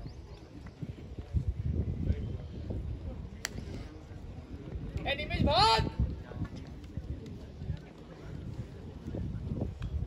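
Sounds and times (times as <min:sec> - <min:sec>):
faint voices: 0:00.0 - 0:10.0
wind rumbling on microphone: 0:00.0 - 0:10.0.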